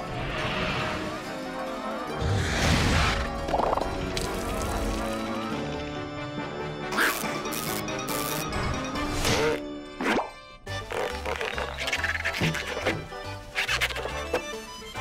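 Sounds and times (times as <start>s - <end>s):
cartoon background music: 0.0s - 15.0s.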